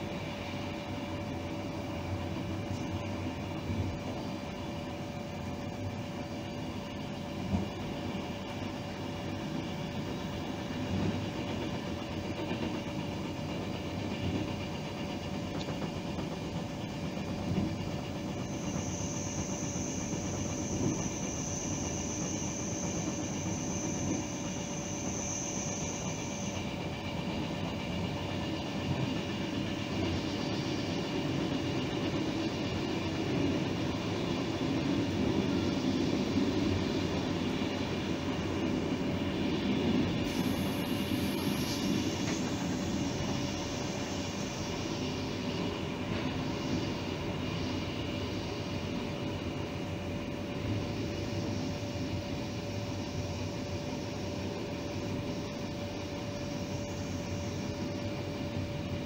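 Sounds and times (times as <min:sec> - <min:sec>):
high steady whistling tone: 0:00.0 - 0:59.0
train interior hum: 0:00.0 - 0:59.0.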